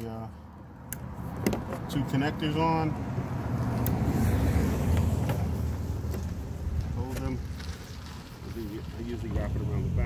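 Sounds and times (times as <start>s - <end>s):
road vehicle engine rumble: 0.0s - 10.0s.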